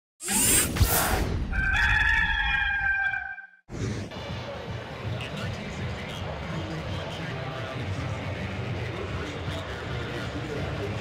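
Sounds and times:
rooster crowing: 1.5s - 3.5s.

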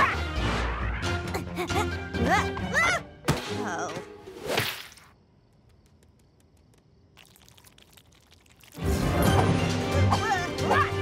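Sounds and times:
music: 0.0s - 4.3s, 8.8s - 11.0s.

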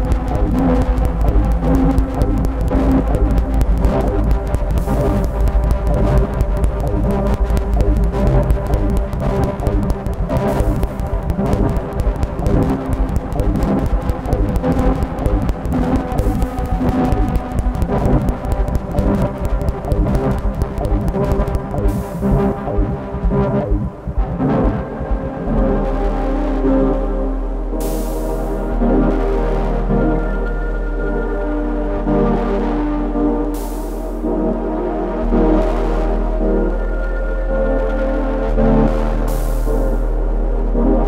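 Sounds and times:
fast low synth pulsing: 0.0s - 29.4s
synthesizer sustained tones: 0.0s - 41.0s.

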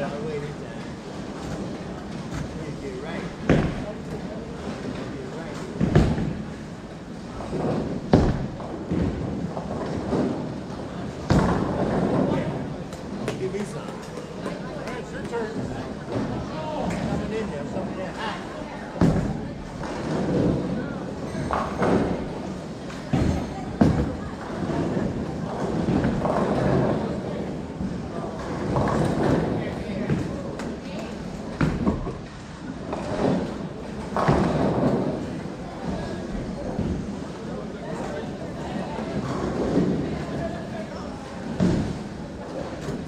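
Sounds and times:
background chatter of people: 0.0s - 43.0s
bowling balls thudding on lanes: 0.8s - 17.9s, 18.8s - 43.0s.

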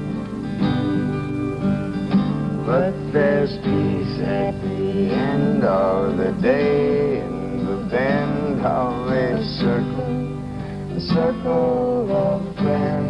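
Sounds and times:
acoustic guitar strummed and picked: 0.0s - 13.0s
people singing: 2.6s - 13.0s.

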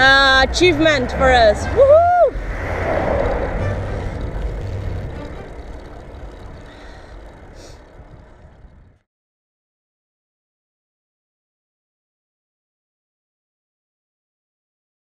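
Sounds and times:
wind buffeting microphone: 0.0s - 9.0s
cycling road noise: 0.0s - 9.1s.

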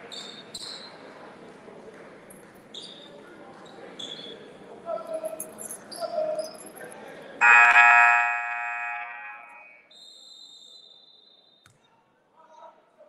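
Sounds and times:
murmur of voices: 0.0s - 9.7s.

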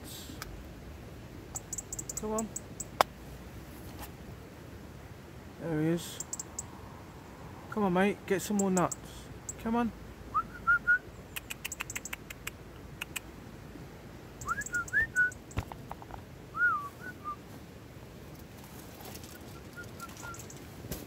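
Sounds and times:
person whistling: 10.4s - 11.0s, 14.4s - 15.4s, 16.6s - 17.4s.

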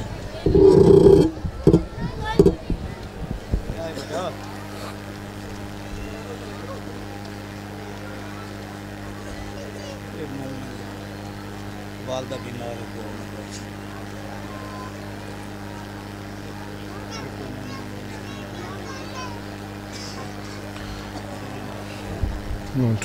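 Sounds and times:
distant voices murmuring: 0.0s - 23.0s
electrical hum: 0.0s - 23.0s.

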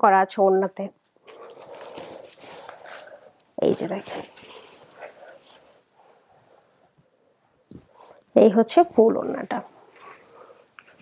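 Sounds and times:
stiff cloth rustling: 1.2s - 8.1s.

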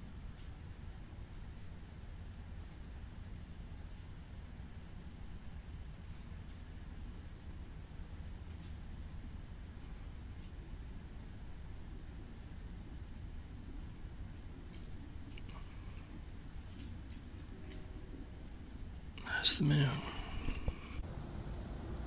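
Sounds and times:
crickets trilling: 0.0s - 22.0s.

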